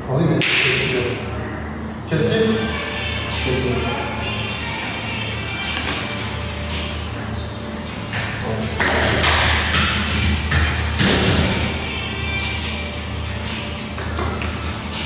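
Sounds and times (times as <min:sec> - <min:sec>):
background music: 0:00.4 - 0:15.0.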